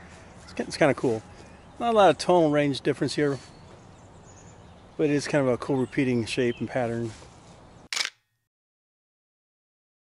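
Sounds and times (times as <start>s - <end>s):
faint outdoor background: 0.0s - 8.5s
camera shutter click: 7.9s - 8.3s.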